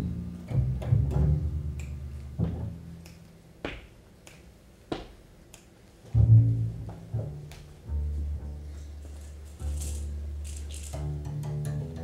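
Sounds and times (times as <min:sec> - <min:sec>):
low double bass note: 0:00.0 - 0:03.0, 0:06.2 - 0:09.0, 0:09.6 - 0:12.0
finger snaps: 0:01.7 - 0:02.3, 0:03.0 - 0:06.0.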